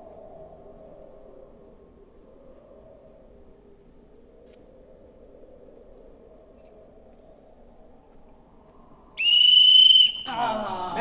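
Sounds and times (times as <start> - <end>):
shrill whistle blast: 9.2 - 10.3.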